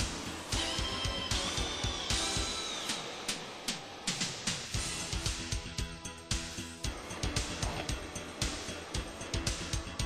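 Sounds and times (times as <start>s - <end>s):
music with steady drum beat: 0.0s - 3.0s, 4.1s - 10.0s.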